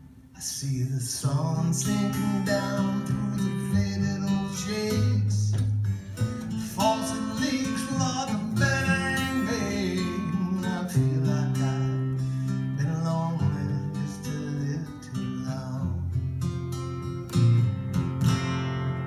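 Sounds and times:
acoustic guitar strummed and picked: 0:00.0 - 0:19.0
person singing: 0:00.4 - 0:05.6, 0:06.6 - 0:16.1.

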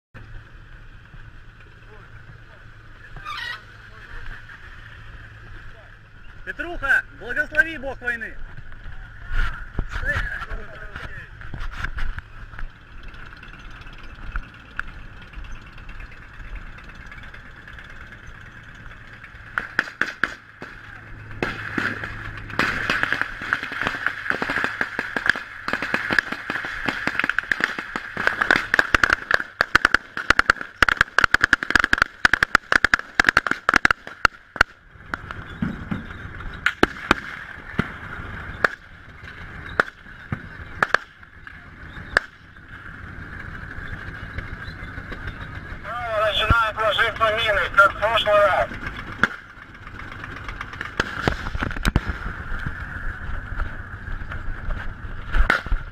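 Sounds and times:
gunfire in rapid bursts: 0:19.5 - 0:35.3, 0:40.8 - 0:41.2.

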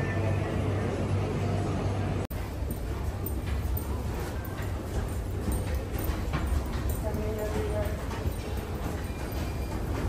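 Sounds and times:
footsteps on hard floor: 0:02.7 - 0:10.0.

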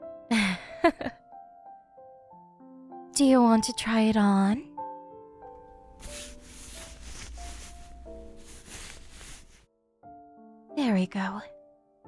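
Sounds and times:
soft background music: 0:00.0 - 0:12.0
collar rustling: 0:05.9 - 0:09.6.

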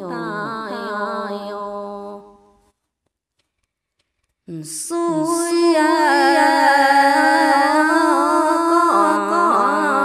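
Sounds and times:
woman singing: 0:00.0 - 0:02.4, 0:04.5 - 0:10.0.

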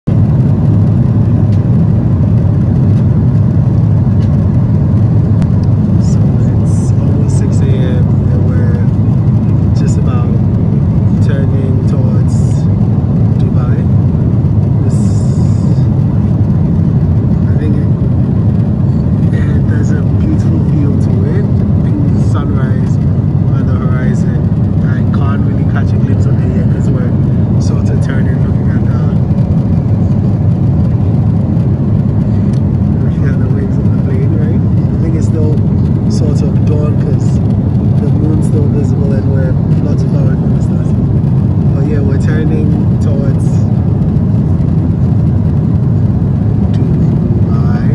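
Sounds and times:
airliner engine and airflow roar: 0:00.0 - 0:47.9.

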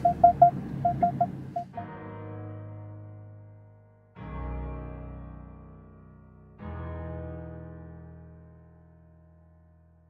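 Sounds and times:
short electronic beeps: 0:00.0 - 0:01.7
sustained keyboard music: 0:00.0 - 0:03.3.

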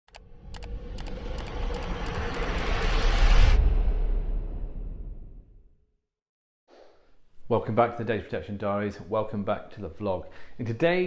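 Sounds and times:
sharp clicks: 0:00.1 - 0:02.7
rushing riser: 0:00.1 - 0:05.7
deep rumble: 0:00.1 - 0:05.8.

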